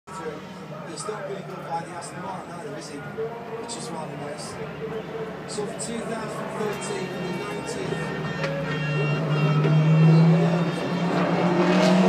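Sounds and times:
race car engines: 0.1 - 12.0.

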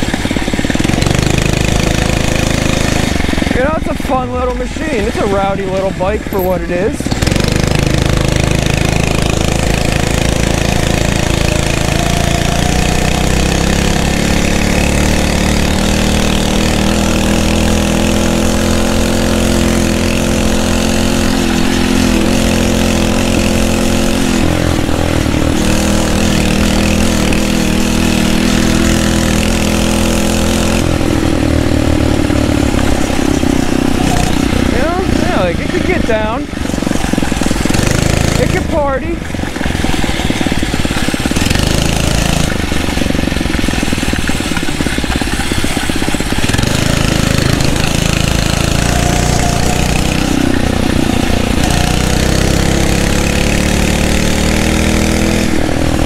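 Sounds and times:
motorized bicycle engine running: 0.0 - 55.2
constant rushing noise: 0.0 - 56.0.

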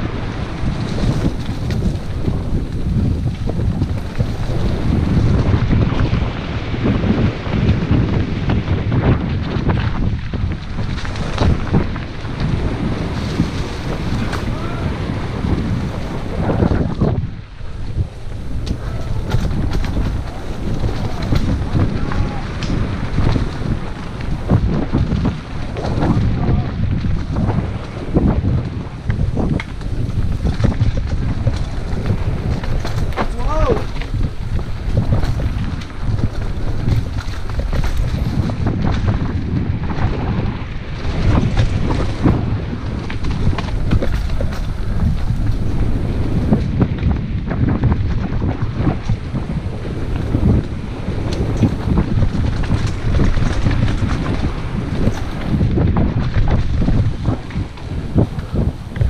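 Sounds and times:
bike rattles and knocks: 0.0 - 59.0
wind buffeting microphone: 0.0 - 59.0.

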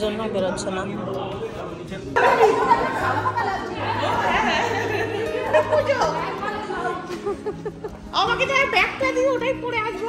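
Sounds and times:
background music low notes: 0.0 - 10.0
women chatting in echoing hall: 2.2 - 10.0.

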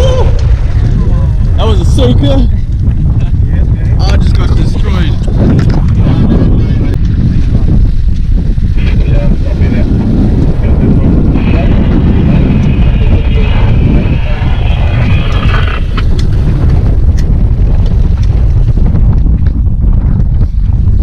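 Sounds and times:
boat noise: 0.0 - 21.0
wind buffeting microphone: 0.0 - 21.0.

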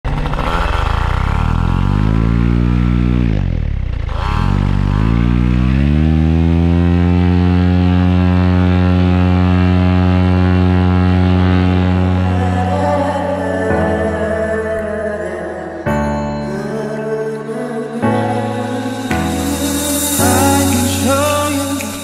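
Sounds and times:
paramotor engine and propeller: 0.0 - 13.4.

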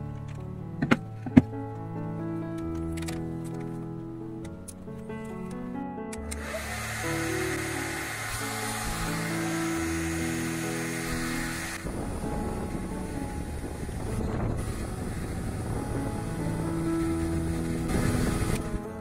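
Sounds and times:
background music with held notes: 0.0 - 19.0
hair dryer blowing: 6.3 - 18.8.

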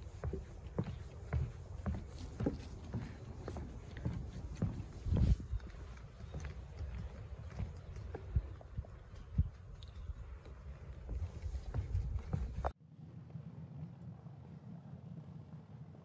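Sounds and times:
footsteps on wooden boardwalk: 0.0 - 12.8.

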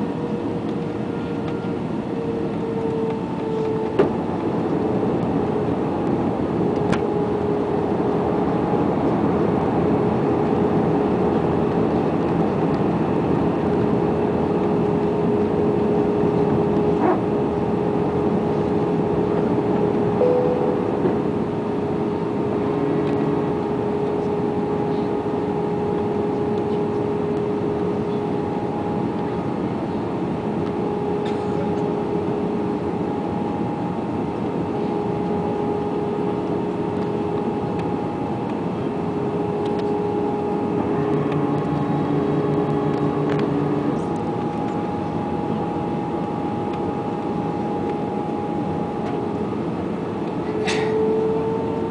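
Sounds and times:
aircraft cabin engine and airflow noise: 0.0 - 51.9
constant hum-like tone: 0.0 - 51.9.

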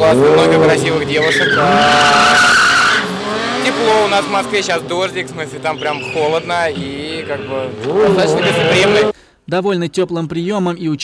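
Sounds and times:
motorcycle tyre squealing: 0.1 - 9.1.

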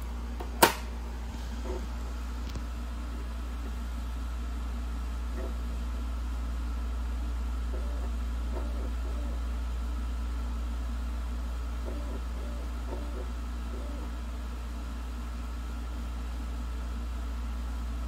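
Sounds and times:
disc drive clicks and whirs: 0.0 - 3.9, 5.2 - 5.8, 7.6 - 9.5, 11.8 - 14.2
disc player humming: 0.0 - 18.0.

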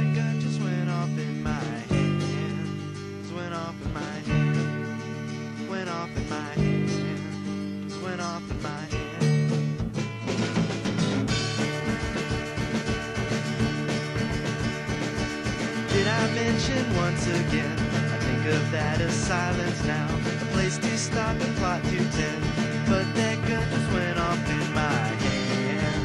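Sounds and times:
indie rock band playing: 0.0 - 26.0.

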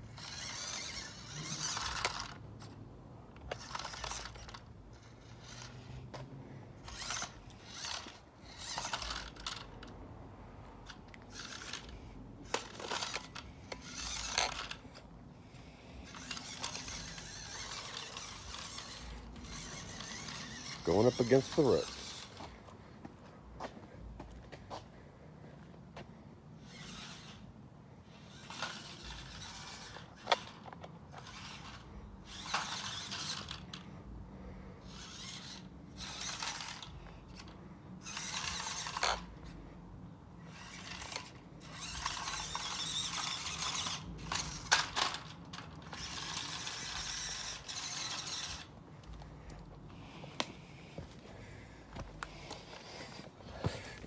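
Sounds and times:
toy truck motor whining: 0.0 - 10.0, 10.8 - 22.6, 26.6 - 39.6, 40.4 - 51.6.

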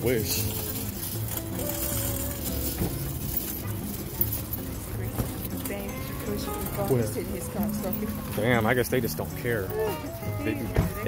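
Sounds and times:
cart basket rattling: 0.0 - 11.0
cart wheels rumbling on asphalt: 0.0 - 11.0.

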